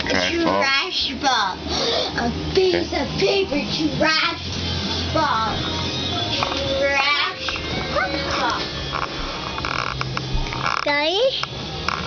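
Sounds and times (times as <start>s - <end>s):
background music: 2.2s - 10.8s.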